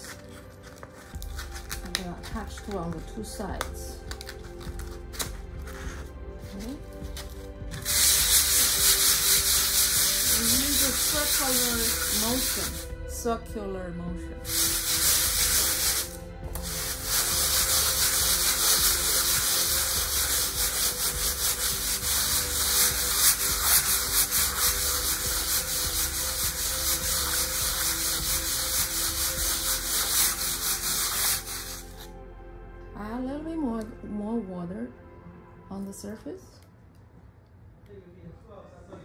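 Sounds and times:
sandpaper rasping on panel: 7.8 - 12.9, 14.4 - 32.1.

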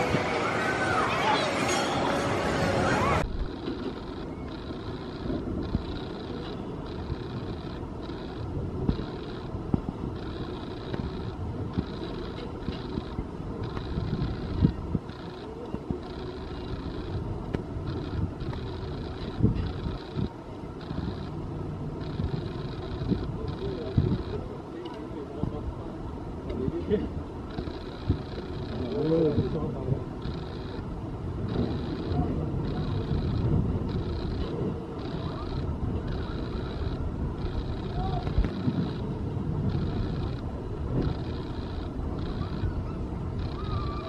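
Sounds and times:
faint passing voices: 0.0 - 44.0.

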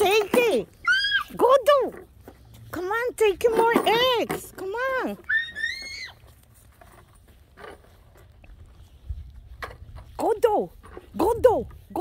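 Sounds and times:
child squealing: 0.8 - 1.4, 5.3 - 6.2
wind rumble on microphone: 8.3 - 12.0.

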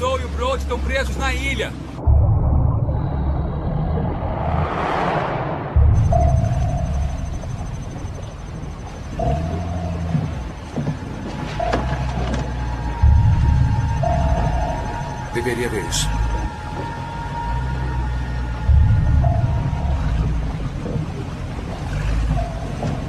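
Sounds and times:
film score low sustained notes: 0.0 - 23.0
rising whoosh: 2.0 - 8.2.

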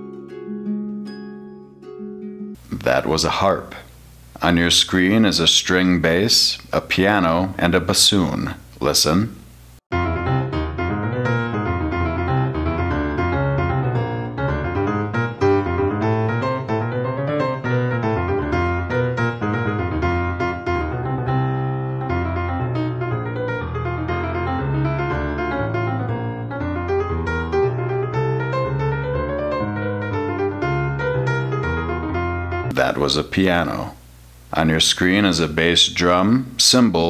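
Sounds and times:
solo piano piece: 9.9 - 32.7.

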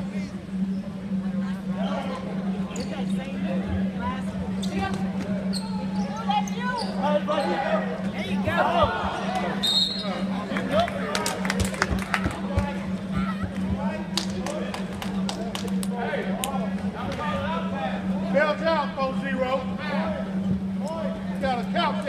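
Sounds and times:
steady low hum: 0.0 - 22.0.

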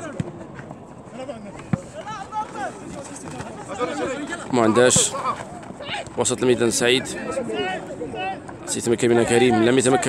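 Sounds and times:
players calling: 0.0 - 10.0.

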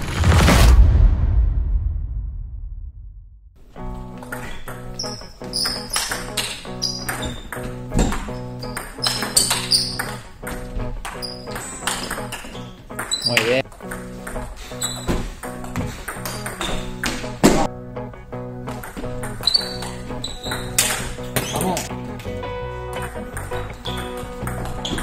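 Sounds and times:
background music: 3.6 - 25.0.

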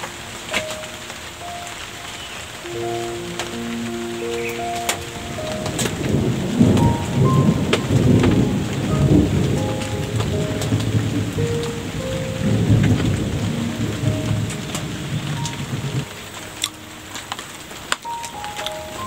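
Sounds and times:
raindrops ticking close by: 0.0 - 19.0
steady rain: 0.0 - 19.0
rolling thunder: 2.7 - 16.2.

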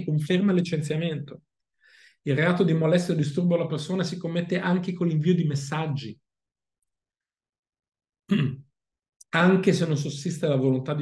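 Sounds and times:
man clearing his throat: 8.3 - 8.7.

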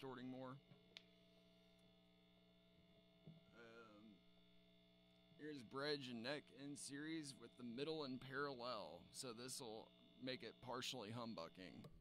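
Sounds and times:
faint guitar amp hum: 0.0 - 12.0.

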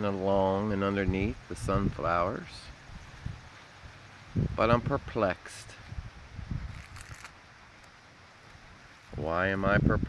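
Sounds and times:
faint hiss of wind: 0.0 - 10.0
wind rumble on microphone: 0.5 - 7.3, 9.0 - 10.0.

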